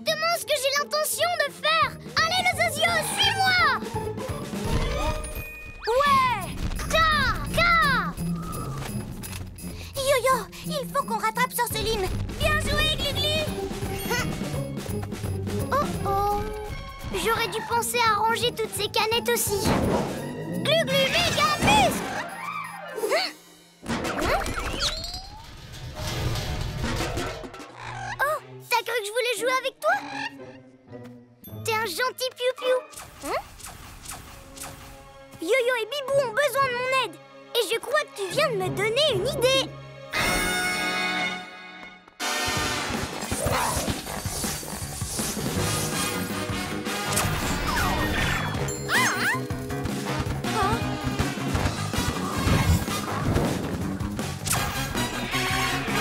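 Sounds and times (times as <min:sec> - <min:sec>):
cartoon soundtrack music: 0:00.0 - 0:56.0.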